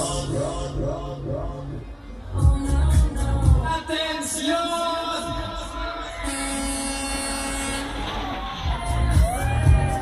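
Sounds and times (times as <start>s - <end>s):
music with heavy bass beat: 0.0s - 4.4s, 6.3s - 10.0s.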